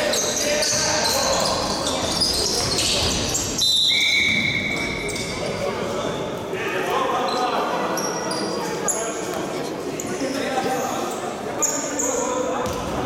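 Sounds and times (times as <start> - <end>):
shoe squeaks: 0.0 - 6.2, 8.0 - 9.2, 10.2 - 12.4
players' voices echoing: 0.0 - 13.0
referee's whistle blast: 3.6 - 5.0.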